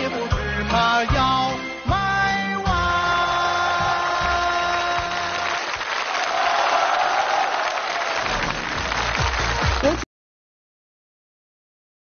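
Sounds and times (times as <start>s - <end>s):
audience applause: 3.7s - 10.0s.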